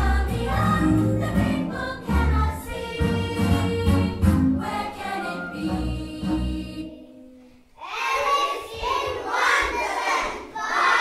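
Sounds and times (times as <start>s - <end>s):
children singing in chorus: 4.6s - 11.0s.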